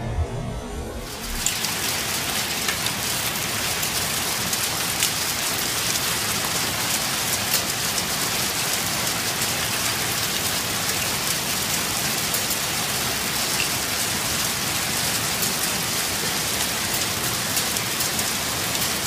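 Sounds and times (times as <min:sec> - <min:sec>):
heavy rain pelting ground and vehicles: 0:01.1 - 0:19.0.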